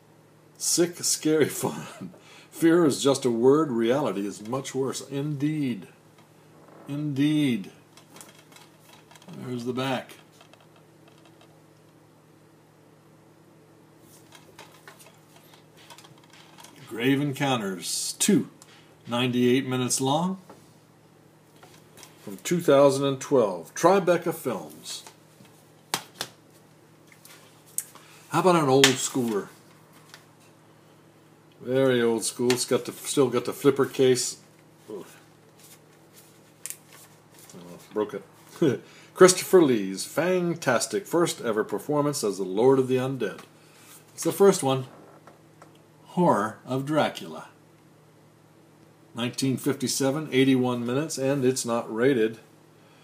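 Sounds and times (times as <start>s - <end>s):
low room hum: 0.0s - 53.0s
plastic case rustling: 8.0s - 9.5s, 14.2s - 16.9s.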